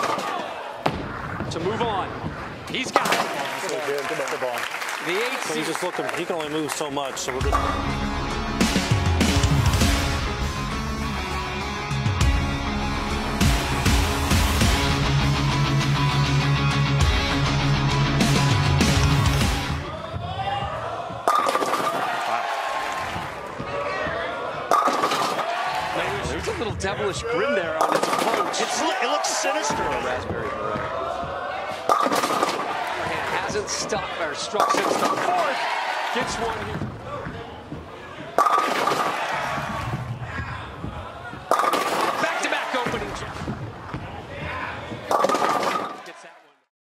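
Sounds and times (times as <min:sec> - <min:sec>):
crowd cheering: 0:00.0 - 0:02.1, 0:02.7 - 0:10.2, 0:12.8 - 0:46.7
bowling ball crashing into pins: 0:21.2 - 0:22.3, 0:24.7 - 0:25.5, 0:27.8 - 0:28.8, 0:31.8 - 0:35.6, 0:38.3 - 0:40.2, 0:41.4 - 0:44.0, 0:45.0 - 0:46.0.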